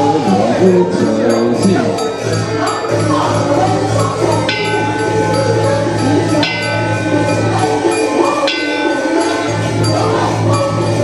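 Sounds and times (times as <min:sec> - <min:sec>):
background music: 0:00.0 - 0:11.0
bowl bell ringing: 0:00.4 - 0:11.0.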